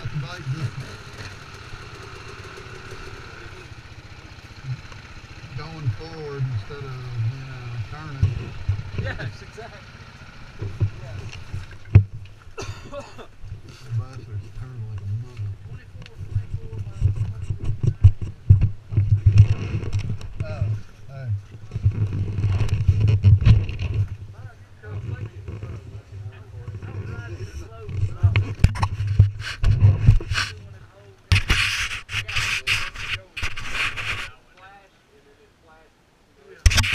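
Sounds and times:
muffled talking: 5.5 - 9.8, 13.7 - 18.3, 24.3 - 36.9
rubbing and knocking on microphone: 8.0 - 9.2, 10.6 - 12.4, 13.4 - 34.4, 36.6 - 36.9.

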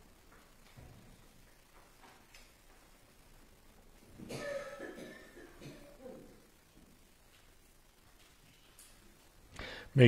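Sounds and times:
person coughing: 4.2 - 6.4.

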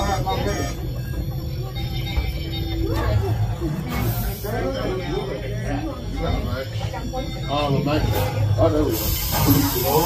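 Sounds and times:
crowd voices talking: 0.0 - 10.0.

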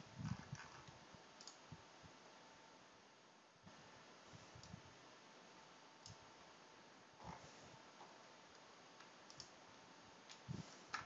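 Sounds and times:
faint hiss: 0.0 - 11.0
computer mouse click: 0.3 - 1.6, 6.0 - 6.2, 8.5 - 9.6.

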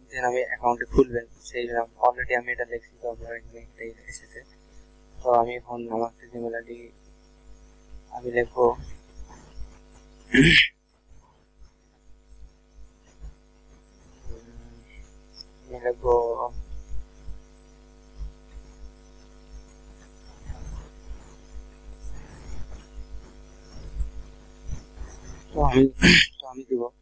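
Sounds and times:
electrical mains hum: 0.0 - 27.0
person coughing: 10.4 - 10.7, 26.0 - 26.4.

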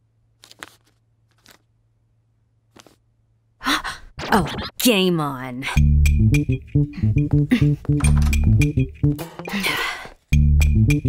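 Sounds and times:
paper crinkling: 0.4 - 1.7, 2.7 - 3.0
woman gasping: 3.6 - 4.1, 6.9 - 7.8, 9.5 - 10.2.

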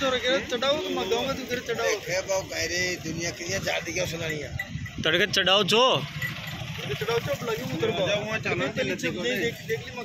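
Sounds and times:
men talking in a crowd: 0.0 - 10.0.

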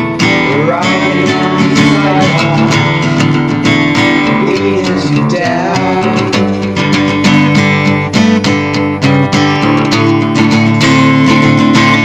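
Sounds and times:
strummed guitar chords: 0.0 - 12.0.

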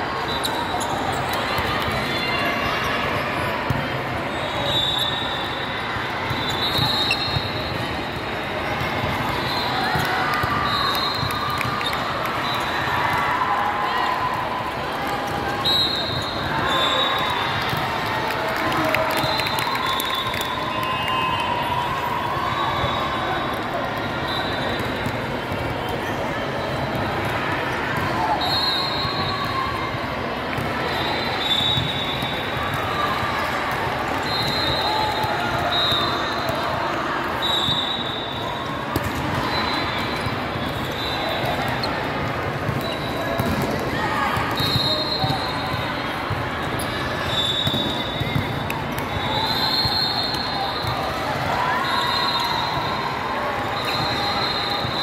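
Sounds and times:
chatter and calls of people: 0.0 - 55.0
shoe squeaks: 6.3 - 7.7
volleyballs struck and bouncing: 38.8 - 39.4, 40.0 - 46.5.

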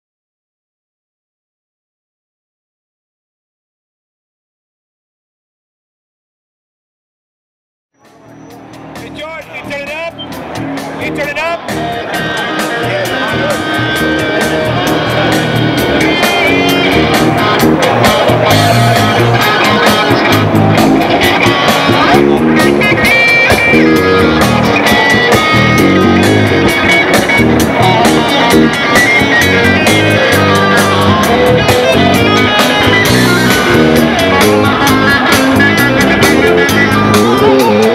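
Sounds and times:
distorted electric guitar: 8.0 - 37.9.

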